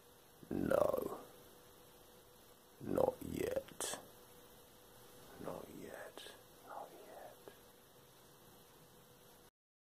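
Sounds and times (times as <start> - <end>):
low electrical hum: 0.0 - 9.5
man whispering: 0.4 - 1.3, 2.8 - 4.1, 5.2 - 7.6.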